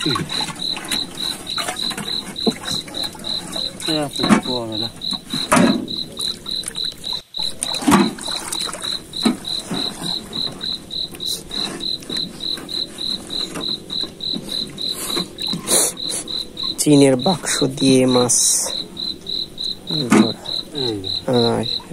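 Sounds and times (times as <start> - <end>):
tin box splashing in water: 0.0 - 10.5
insect chirping: 0.0 - 21.9.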